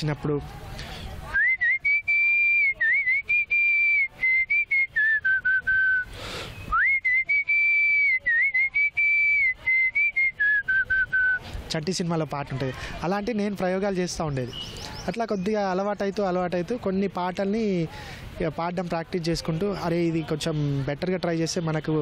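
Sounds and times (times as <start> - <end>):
breath: 0.7 - 1.2, 6.1 - 6.7, 12.7 - 13.0, 17.9 - 18.4
man whistling a melody: 1.4 - 11.4.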